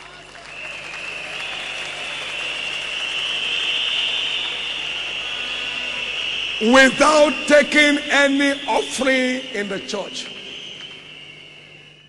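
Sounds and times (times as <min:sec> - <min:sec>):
crowd applauding and cheering: 0:00.0 - 0:12.0.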